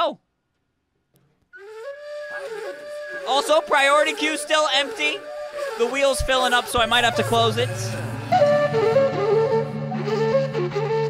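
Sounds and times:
flute-like wind melody: 1.6 - 11.0.

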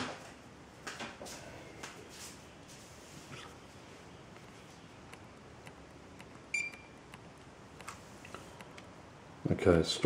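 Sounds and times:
low room hiss: 0.0 - 10.0
short electronic beep: 6.5 - 7.0.

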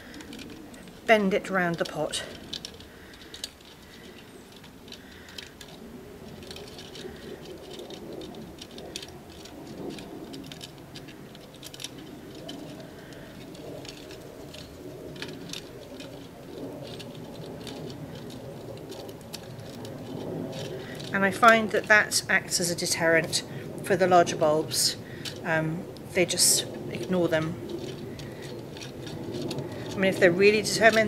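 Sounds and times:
wire mesh clicking and rattling: 0.0 - 31.0.

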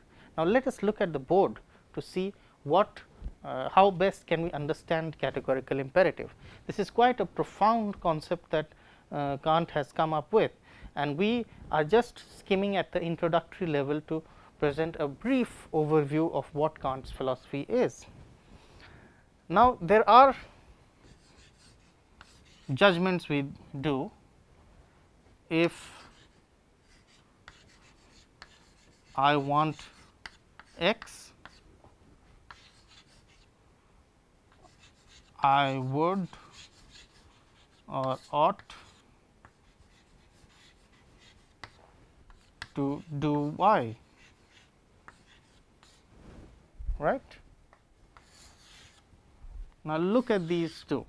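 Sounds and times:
chalk scratching on chalkboard: 21.0 - 22.9, 25.7 - 31.7, 32.5 - 33.5, 34.5 - 46.1, 48.2 - 49.1, 50.0 - 51.0
chalk tapping on chalkboard: 21.1 - 22.7, 26.1 - 31.6, 32.5 - 33.5, 34.5 - 35.4, 36.2 - 46.0, 47.7 - 49.0.

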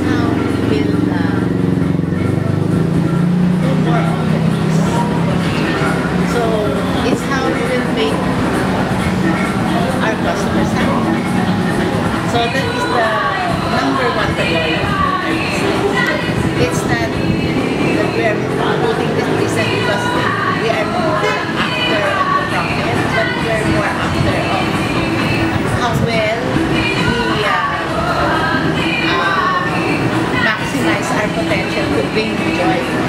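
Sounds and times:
woman talking: 0.0 - 1.6, 3.6 - 8.4, 10.0 - 11.2, 12.2 - 33.0
background music: 0.0 - 33.0
loud continuous rumble: 0.0 - 33.0.

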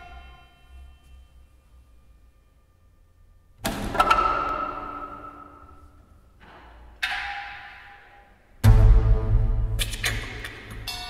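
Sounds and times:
loud percussive crash: 8.6 - 10.0
improvised ensemble music: 8.6 - 11.0.

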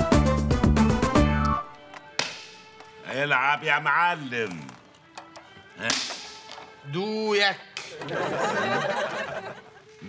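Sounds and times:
dice clicking on wooden board: 4.4 - 6.7.

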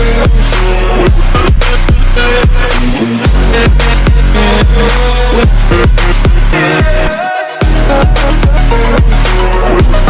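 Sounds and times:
electronic music with heavy beat: 0.0 - 10.0.

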